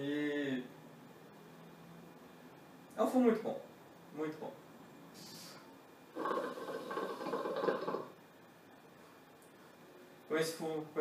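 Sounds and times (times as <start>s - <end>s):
water bubbling in hookah: 6.1s - 8.2s.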